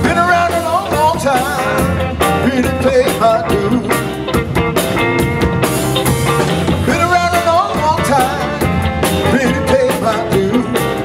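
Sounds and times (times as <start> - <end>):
bent guitar lead line: 0.0 - 11.0
live blues band playing: 0.0 - 11.0.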